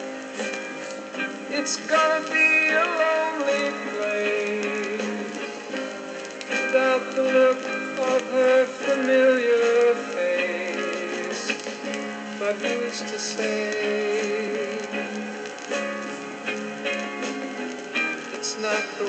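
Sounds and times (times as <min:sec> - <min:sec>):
ballad played from a turntable: 0:00.0 - 0:19.0.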